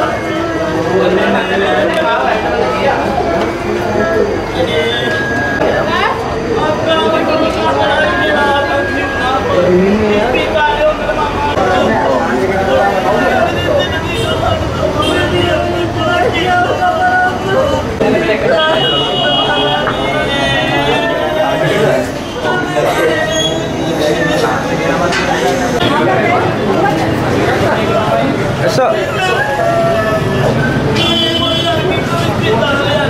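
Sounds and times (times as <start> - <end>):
people talking indistinctly: 0.0 - 33.0.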